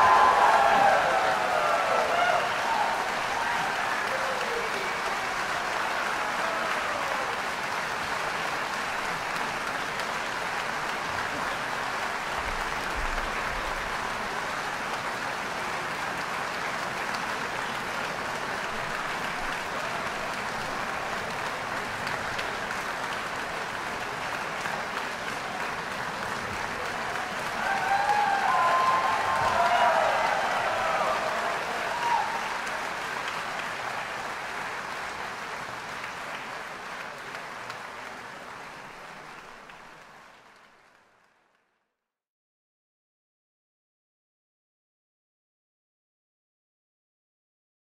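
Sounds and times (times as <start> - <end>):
cheering voices: 0.0 - 16.2, 17.0 - 39.7
audience applauding: 0.0 - 41.6.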